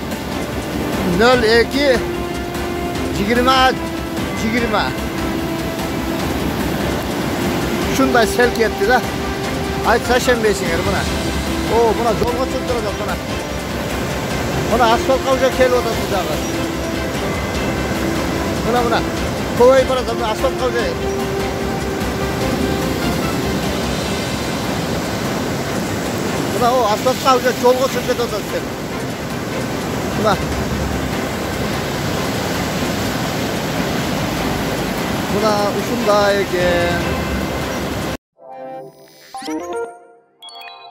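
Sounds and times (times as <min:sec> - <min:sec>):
floodwater and debris rushing: 0:00.0 - 0:38.2.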